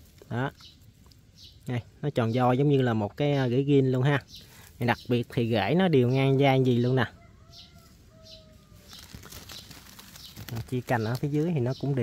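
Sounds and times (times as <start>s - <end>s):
distant bird calls: 0.0s - 12.0s.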